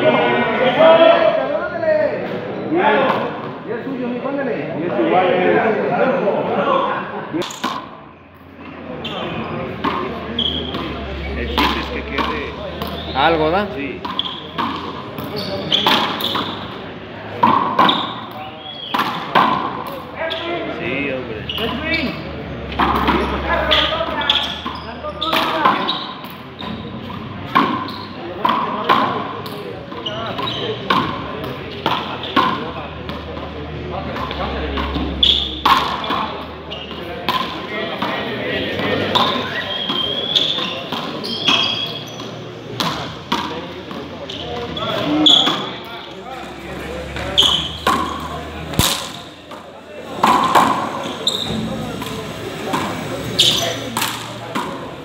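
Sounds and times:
ball smacking off court walls: 47.1s - 49.6s.

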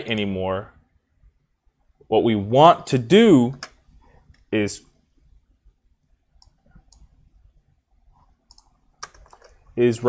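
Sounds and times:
computer mouse clicks: 6.4s - 7.2s, 8.2s - 9.7s.

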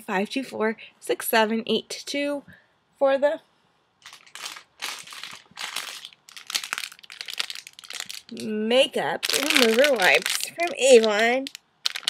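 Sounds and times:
plastic pack crinkling: 4.0s - 12.0s.

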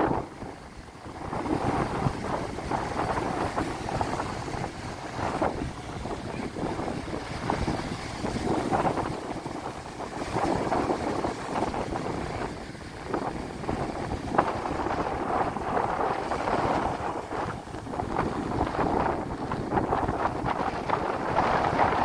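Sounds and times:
breaking surf: 0.0s - 22.0s
wind buffeting microphone: 0.0s - 22.0s.

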